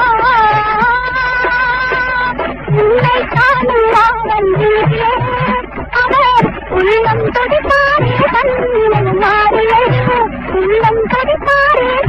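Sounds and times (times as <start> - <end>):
low drum beats: 0.0 - 12.0
woman singing: 0.0 - 12.0.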